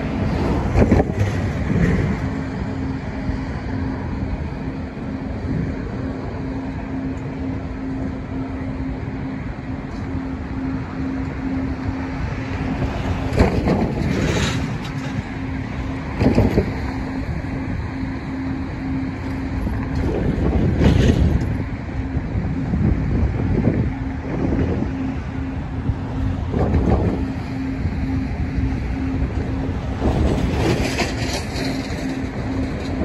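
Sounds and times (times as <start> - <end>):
wind buffeting microphone: 0.0 - 33.0.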